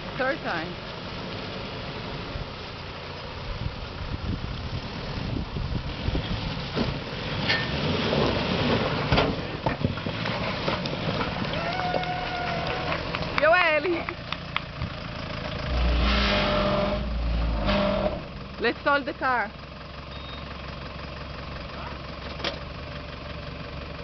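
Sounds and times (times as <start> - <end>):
water splashing at wheels: 0.0 - 16.6
engine running under load: 0.0 - 24.0.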